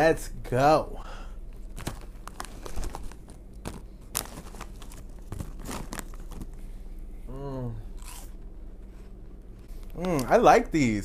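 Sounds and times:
snack bag crinkling: 1.5 - 6.6.

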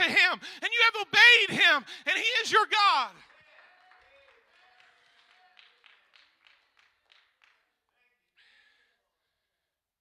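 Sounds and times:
faint hand clapping: 3.2 - 8.0.

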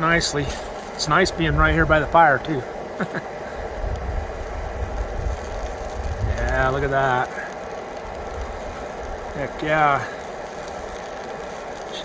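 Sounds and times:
camping stove low rumble: 0.0 - 12.0
hash browns sizzling in a pan: 0.0 - 12.0.

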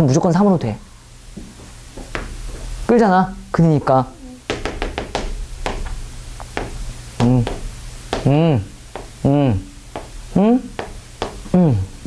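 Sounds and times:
chalk tapping on blackboard: 2.0 - 2.4, 4.5 - 9.2, 9.9 - 11.5.

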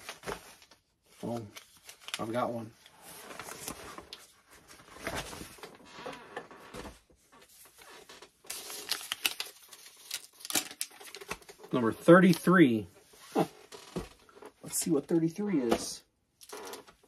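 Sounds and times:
paper rustling and crinkling: 0.0 - 5.9, 6.7 - 12.5.

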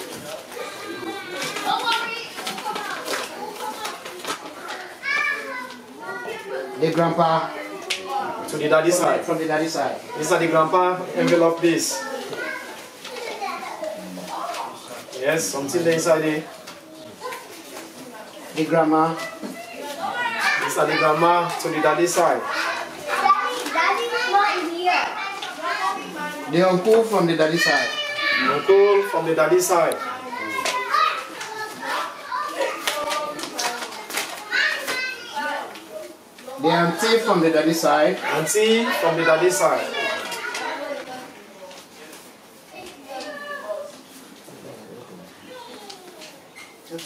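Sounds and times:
people chattering: 0.0 - 47.0
child-like voice: 0.5 - 6.8, 12.0 - 14.8, 22.4 - 26.4, 27.7 - 29.1, 30.0 - 36.2, 38.8 - 41.3, 42.7 - 44.0, 45.4 - 46.4
indistinct talking: 15.8 - 46.6
high-pitched child-like voice: 45.4 - 46.4.

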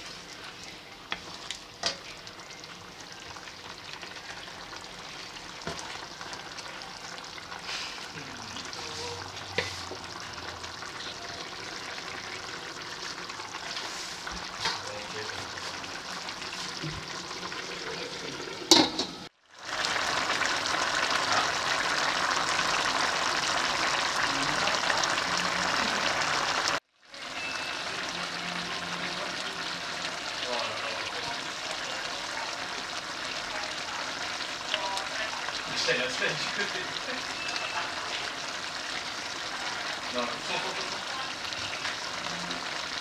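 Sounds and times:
stew bubbling and sizzling: 0.0 - 43.0.

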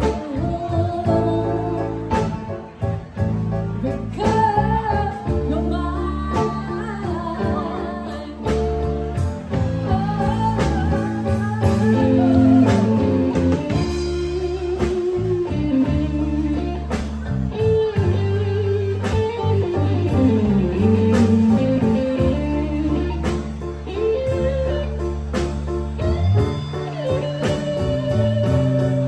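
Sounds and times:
electric guitar lead: 0.0 - 29.0
live blues band: 0.0 - 29.0.

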